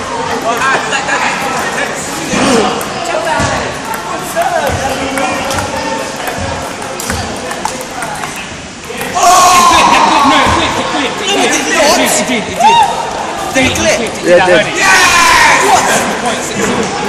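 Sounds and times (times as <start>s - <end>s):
many voices talking: 0.0s - 17.0s
table tennis ball clicking: 2.6s - 9.2s
loud shouting: 9.1s - 10.8s, 11.5s - 13.2s, 14.6s - 16.1s.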